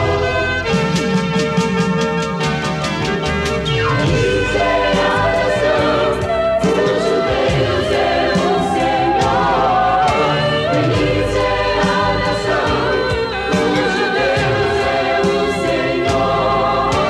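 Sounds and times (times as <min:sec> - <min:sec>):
instrumental backing with beat: 0:00.0 - 0:17.0
woman singing with vibrato: 0:04.3 - 0:14.8.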